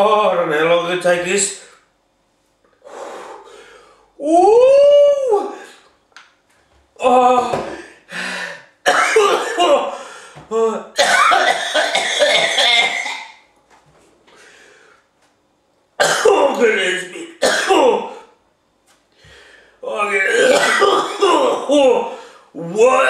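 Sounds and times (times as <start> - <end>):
man's long vocal ooh: 4.2 - 5.8
man coughing: 8.8 - 10.1, 11.0 - 13.4, 16.0 - 18.3, 20.2 - 22.2
man clearing his throat: 11.0 - 13.4, 16.0 - 16.6, 17.4 - 18.2, 20.2 - 22.2.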